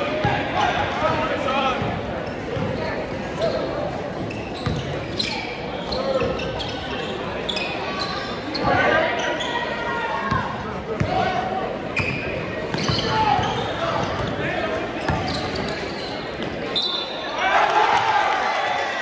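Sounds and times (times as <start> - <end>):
voices in a gym: 0.0 - 19.0
basketball bouncing on court: 1.8 - 2.8, 4.2 - 5.0, 12.0 - 14.4.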